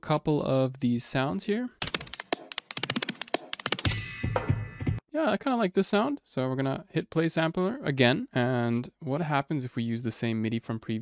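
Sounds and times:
rapid clicky percussion hits: 1.8s - 5.0s.

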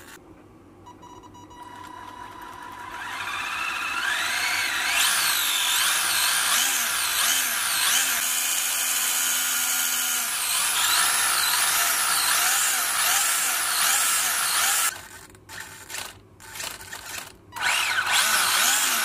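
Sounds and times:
electric motor and gears whining: 1.8s - 19.0s.

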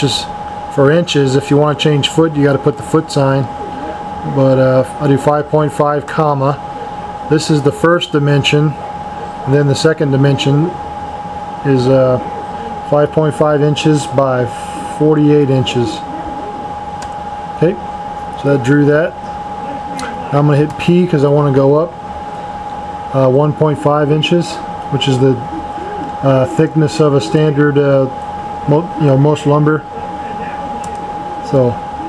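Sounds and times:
fan or air conditioner running: 0.0s - 32.0s
high-pitched whine: 0.0s - 32.0s
steady background hum: 0.0s - 32.0s.

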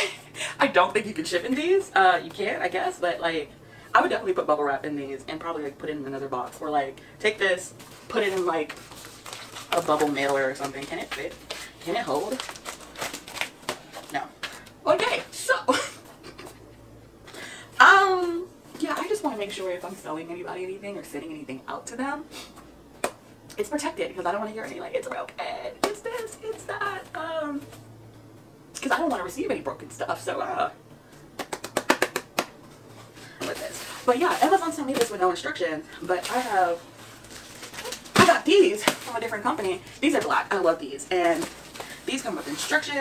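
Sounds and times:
woman speaking: 0.0s - 8.8s, 9.6s - 12.5s, 14.0s - 16.1s, 17.7s - 22.3s, 23.5s - 27.8s, 28.7s - 30.8s, 33.3s - 36.9s, 37.8s - 43.0s
plastic bubble mailer crinkling: 8.0s - 14.8s, 33.2s - 43.0s.

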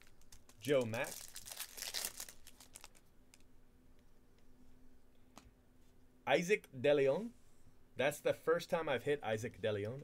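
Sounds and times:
foil wrapper tearing and crinkling: 0.0s - 3.0s.

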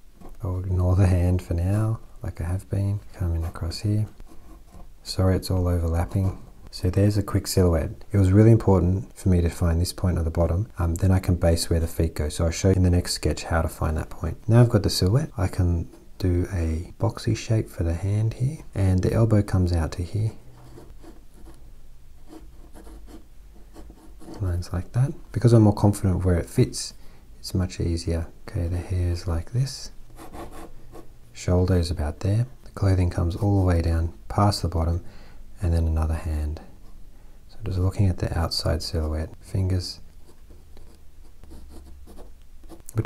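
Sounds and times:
pen scratching on paper: 20.6s - 21.6s, 22.3s - 24.4s, 30.2s - 30.7s, 40.2s - 43.0s.

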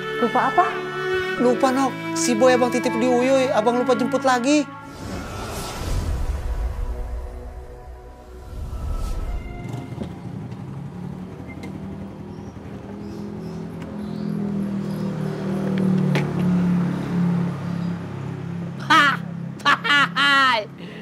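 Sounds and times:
motorcycle engine running: 9.7s - 16.1s.

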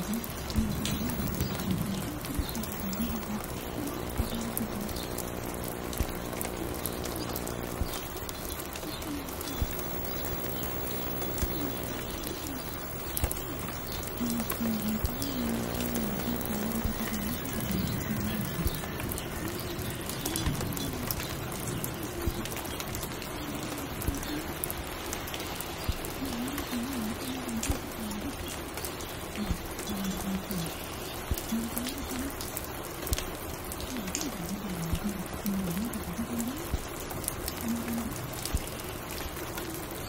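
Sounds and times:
low wavering bird calls: 0.0s - 21.9s
small clicks and crackles: 0.0s - 40.0s
steady rain hiss: 0.0s - 40.0s
low hum: 0.5s - 8.8s, 9.4s - 19.0s.

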